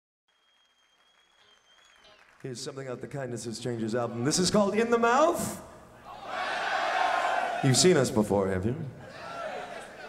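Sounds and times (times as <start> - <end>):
audience applause: 0.3 - 3.2.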